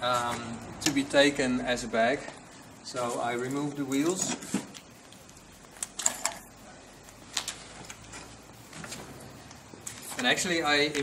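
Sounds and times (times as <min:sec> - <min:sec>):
metal parts clicking: 0:05.8 - 0:06.5.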